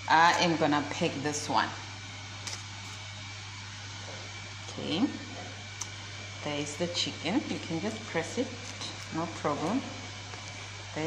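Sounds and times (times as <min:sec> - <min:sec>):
kitchen hum and hiss: 0:00.0 - 0:11.0.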